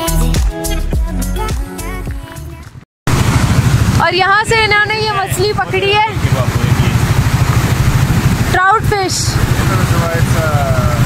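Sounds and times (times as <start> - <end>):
background music: 0.0 - 2.8
rushing white-water river: 3.2 - 11.0.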